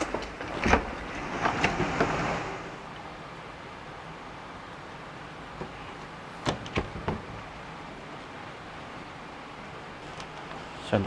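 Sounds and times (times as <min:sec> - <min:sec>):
faint steady hiss: 0:00.0 - 0:11.0
front door handled: 0:06.4 - 0:07.4.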